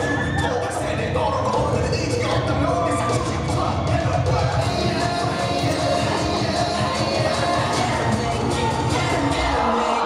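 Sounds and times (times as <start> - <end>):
dance music with bass beat: 0.0 - 9.8.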